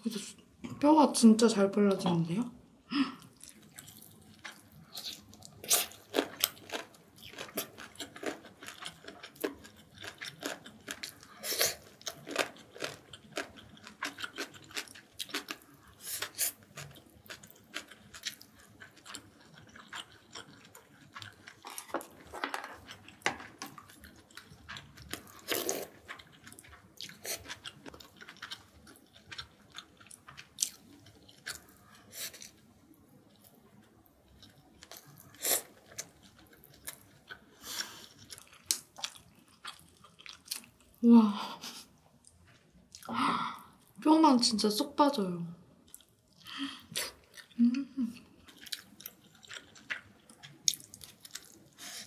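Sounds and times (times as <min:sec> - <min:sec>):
person chewing food: 0:03.2 - 0:41.0, 0:41.6 - 0:44.0, 0:45.8 - 0:52.0.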